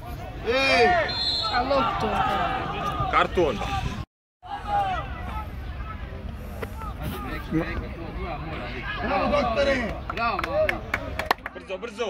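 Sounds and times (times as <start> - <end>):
voices calling out: 0.0 - 11.5.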